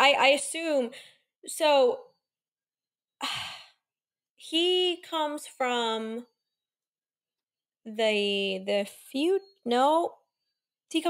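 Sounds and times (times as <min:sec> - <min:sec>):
woman sighing: 0:03.2 - 0:03.8.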